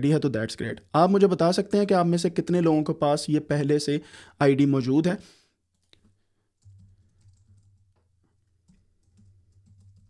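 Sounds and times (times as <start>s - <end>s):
computer keyboard typing: 5.7s - 10.0s.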